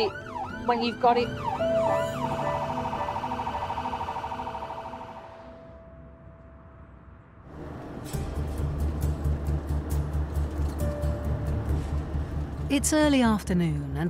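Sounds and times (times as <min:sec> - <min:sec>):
ambulance siren yelping: 0:00.0 - 0:05.8.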